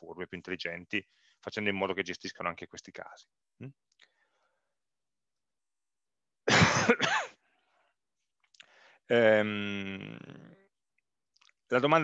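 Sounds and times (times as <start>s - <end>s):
man clearing throat and coughing: 6.4s - 7.4s.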